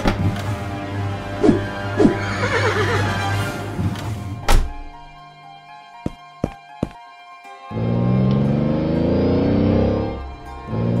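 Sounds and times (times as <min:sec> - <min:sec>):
background music: 0:00.0 - 0:11.0
horse whinnying: 0:02.0 - 0:03.2.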